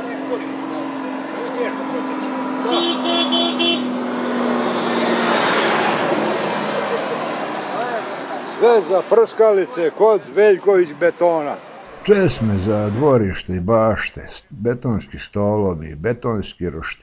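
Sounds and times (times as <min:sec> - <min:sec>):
vehicle horn beeps: 0:02.6 - 0:03.9
broad rushing noise: 0:11.1 - 0:13.5.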